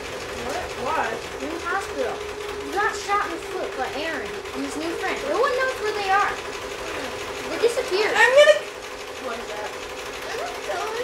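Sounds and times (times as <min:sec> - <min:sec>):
steady mechanical hum: 0:00.0 - 0:11.0
boys talking and exclaiming: 0:00.4 - 0:11.0.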